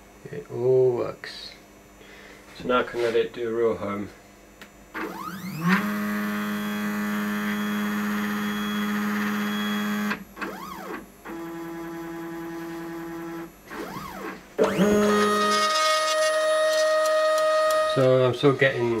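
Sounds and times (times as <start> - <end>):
stepper motors whining: 5.0 - 19.0.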